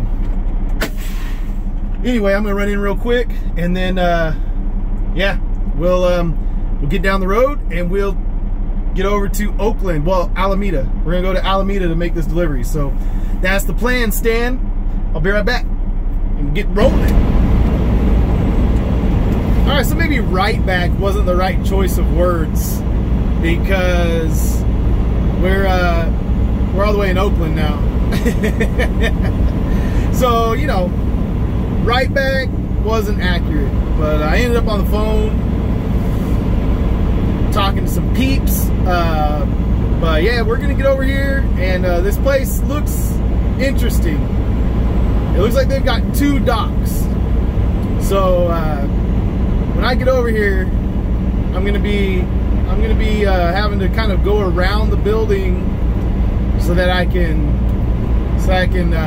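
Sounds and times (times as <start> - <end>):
diesel truck idling: 0.0 - 59.0
air brake pop and hiss: 0.7 - 1.9
short breathy bursts: 29.6 - 30.1.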